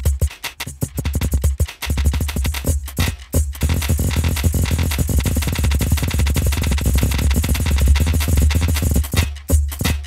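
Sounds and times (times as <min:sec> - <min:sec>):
rapid granular percussive hits: 0:00.0 - 0:10.0.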